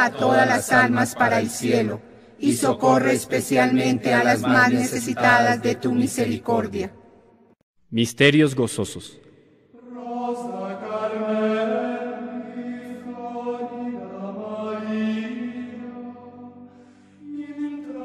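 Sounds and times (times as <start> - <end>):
slow sung chant: 0.0 - 7.0, 9.7 - 18.0.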